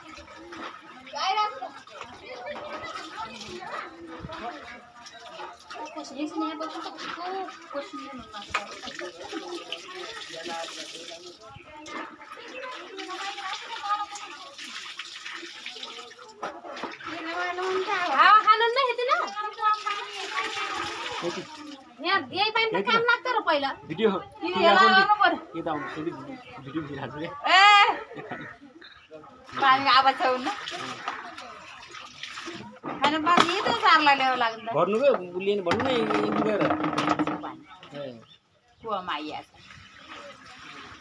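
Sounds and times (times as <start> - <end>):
water running into buckets: 0.0 - 28.5, 29.3 - 41.0
faint voices: 0.0 - 41.0
people talking over one another: 0.0 - 41.0.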